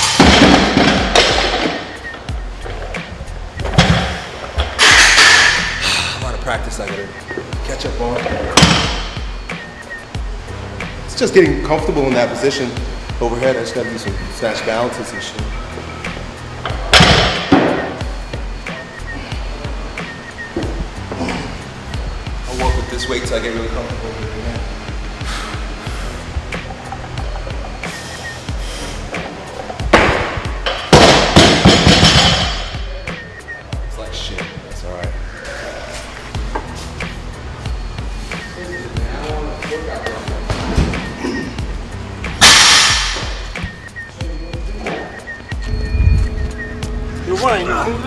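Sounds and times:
background music: 0.0 - 48.0
barbells and weights clanking: 3.8 - 5.8.

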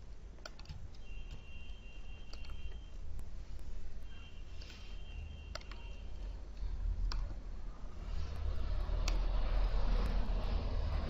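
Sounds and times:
low electrical hum: 0.0 - 11.0
computer mouse clicks: 0.3 - 1.5, 2.2 - 3.7, 5.4 - 7.4, 8.2 - 10.2
faint high whine: 0.9 - 11.0.

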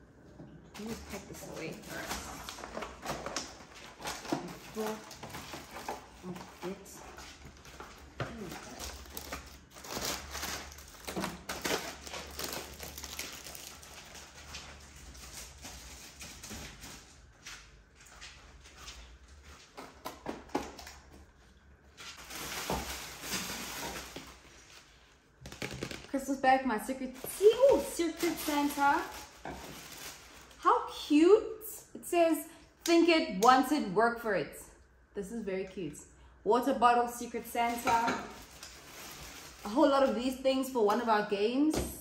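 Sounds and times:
plastic packaging crinkling: 0.8 - 17.1, 22.1 - 26.3, 27.0 - 31.0, 37.6 - 40.4.

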